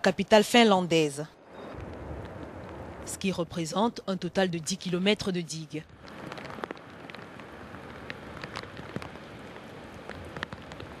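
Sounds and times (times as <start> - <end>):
steady outdoor hiss: 0.0 - 11.0
light ticks and crackles: 1.7 - 11.0.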